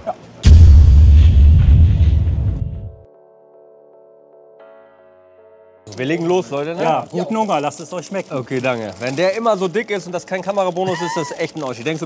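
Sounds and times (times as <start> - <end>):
deep rumbling explosion boom: 0.4 - 3.0.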